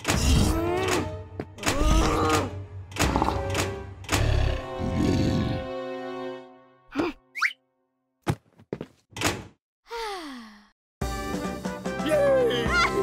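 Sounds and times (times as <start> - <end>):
music: 0.0 - 7.9, 11.0 - 13.0.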